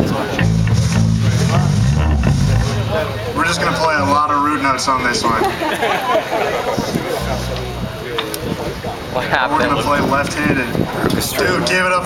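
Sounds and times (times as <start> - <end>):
electric bass guitar notes: 0.0 - 5.7, 6.4 - 10.4.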